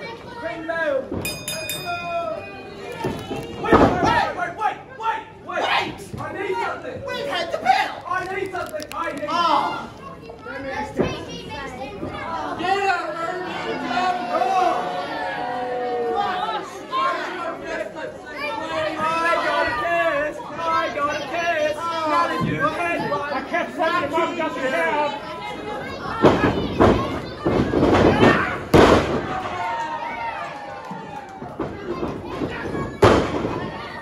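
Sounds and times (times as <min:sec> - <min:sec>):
spectators chattering and calling out: 0:00.0 - 0:34.0
wrestlers slapping and thudding: 0:26.1 - 0:29.7, 0:30.9 - 0:34.0.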